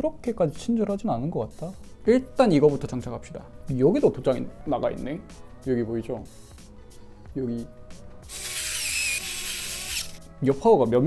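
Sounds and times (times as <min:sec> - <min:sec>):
faint background music: 0:00.0 - 0:11.0
screwdriver turning a screw: 0:08.3 - 0:10.2.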